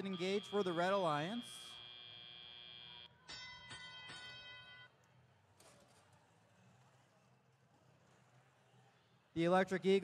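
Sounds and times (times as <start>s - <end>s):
faint bell-like chime: 3.3s - 4.9s.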